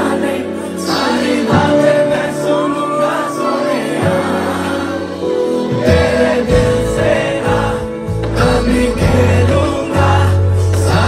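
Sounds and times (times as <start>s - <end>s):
crowd singing together: 0.0s - 11.0s
live concert music with heavy bass: 0.0s - 11.0s.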